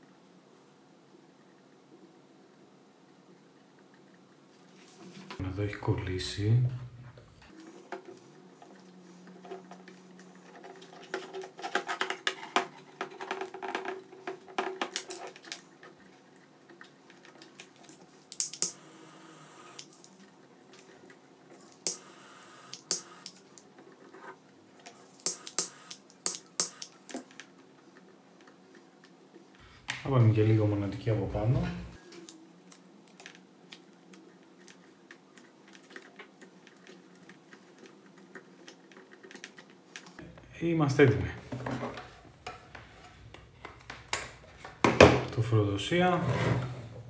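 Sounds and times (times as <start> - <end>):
faint steady hum: 0.0 - 47.0
wires rustling: 6.4 - 18.9.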